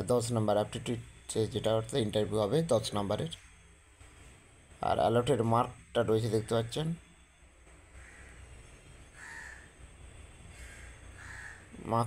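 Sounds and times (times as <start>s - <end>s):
low steady hum: 0.0s - 12.0s
faint bird calls: 7.9s - 12.0s.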